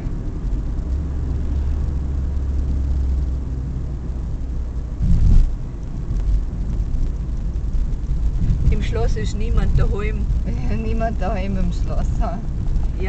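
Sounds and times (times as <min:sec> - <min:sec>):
engine and tyre rumble: 0:00.0 - 0:13.0.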